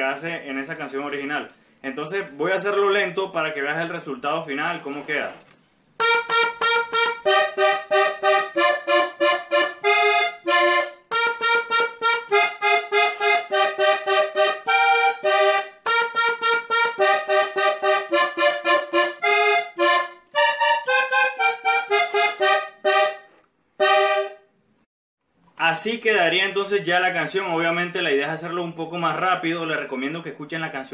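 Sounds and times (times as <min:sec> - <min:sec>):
button accordion melody: 0:06.0 - 0:24.6.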